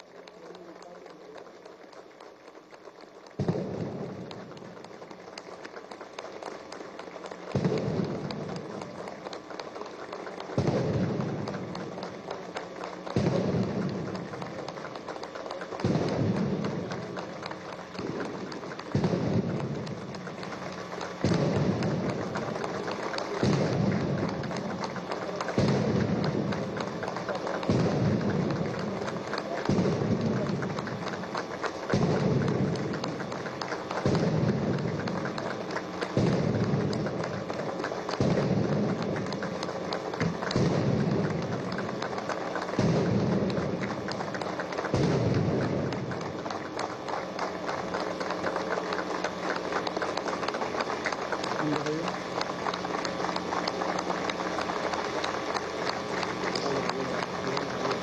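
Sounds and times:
crowd applauding: 0.0s - 58.0s
artillery guns firing: 2.8s - 58.0s.

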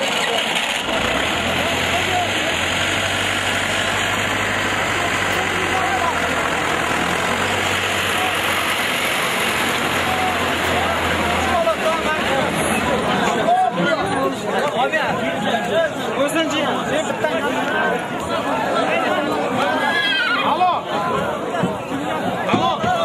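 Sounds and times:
tractor engine idling: 0.0s - 13.3s
crowd chatter and shouts: 0.0s - 23.0s.

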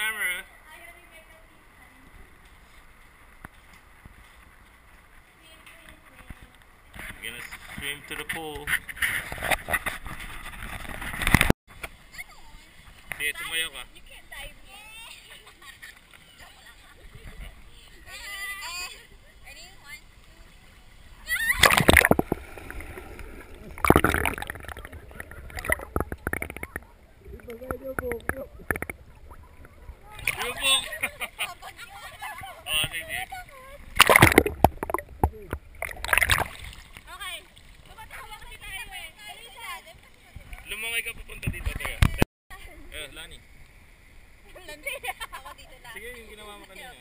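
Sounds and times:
young women talking: 0.6s - 2.3s, 13.9s - 20.6s, 29.1s - 33.9s, 37.1s - 40.6s, 44.4s - 46.0s
women laughing and chattering: 13.9s - 21.6s, 28.4s - 34.0s, 37.1s - 40.7s, 44.4s - 47.0s
women laughing: 15.2s - 17.6s, 30.4s - 32.6s, 44.5s - 45.8s
water splash: 21.3s - 31.1s, 33.9s - 38.0s.

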